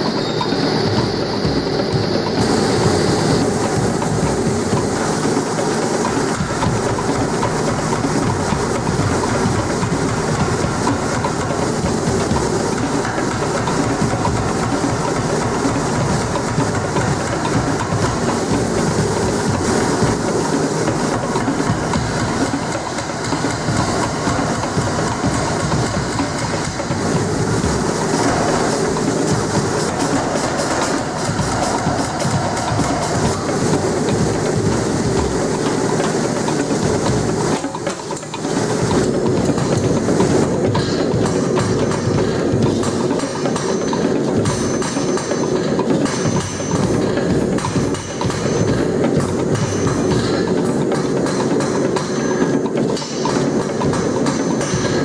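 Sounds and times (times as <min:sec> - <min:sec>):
power hammer striking steel: 0:00.0 - 0:55.0.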